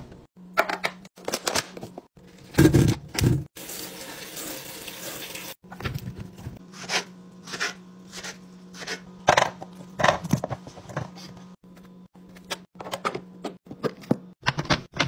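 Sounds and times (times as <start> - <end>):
tap water running: 3.5 - 5.6.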